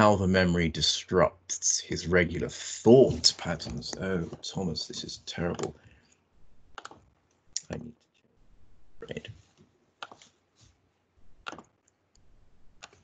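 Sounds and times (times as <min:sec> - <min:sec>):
keyboard and mouse clicking: 0:05.5 - 0:05.8, 0:06.7 - 0:07.0, 0:10.0 - 0:10.3, 0:11.4 - 0:12.0, 0:12.8 - 0:13.0.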